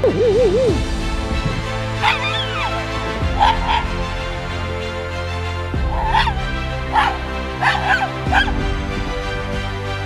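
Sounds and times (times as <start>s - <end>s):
background music: 0.0s - 10.0s
small dog barking: 2.0s - 4.0s, 6.0s - 8.6s.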